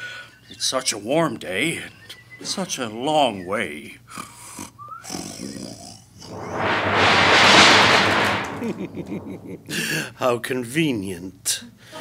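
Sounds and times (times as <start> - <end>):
thunderclap crash: 6.3 - 10.1.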